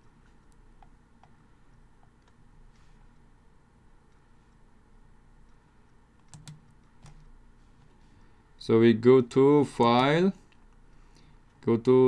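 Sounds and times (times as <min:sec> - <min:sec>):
computer mouse clicks: 0:00.2 - 0:02.4, 0:05.4 - 0:07.3.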